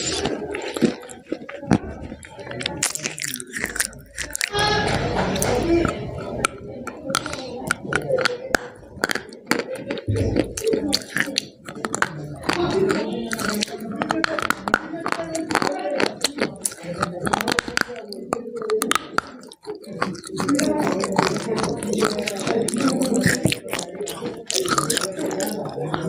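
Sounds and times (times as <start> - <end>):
crunchy chewing: 0.0 - 26.0
mouth sounds: 0.0 - 26.0.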